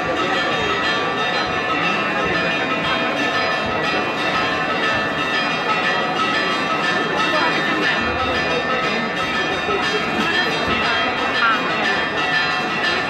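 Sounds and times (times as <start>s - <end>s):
church bells ringing: 0.0s - 13.0s
crowd chatter: 0.0s - 13.0s.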